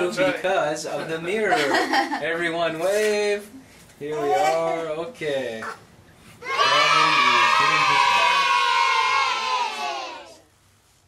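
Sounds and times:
voices cheering: 6.4s - 10.4s.

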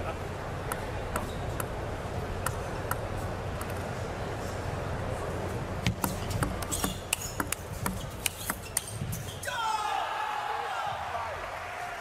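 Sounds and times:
ping pong ball clicking: 5.8s - 9.0s
people shouting and cheering: 9.4s - 12.0s.

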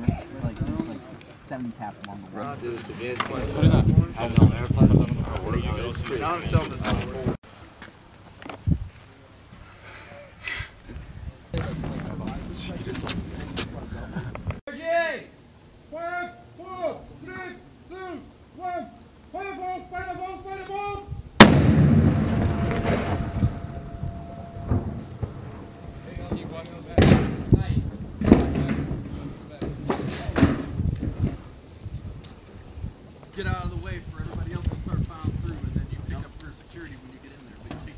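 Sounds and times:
explosive blast with rumble: 21.4s - 29.1s
sharp bangs: 21.4s - 31.4s.

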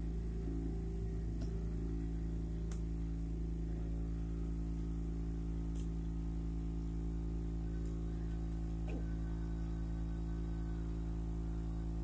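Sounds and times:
hot-air gun humming: 0.0s - 12.0s.

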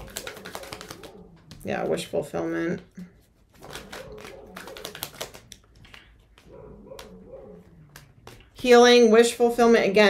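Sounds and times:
cards being shuffled: 0.0s - 2.2s, 3.0s - 8.9s
dog whining faintly: 6.5s - 8.2s.

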